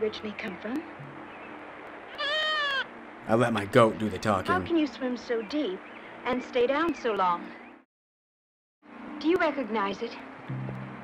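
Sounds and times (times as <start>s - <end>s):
goat bleating: 2.2s - 2.9s.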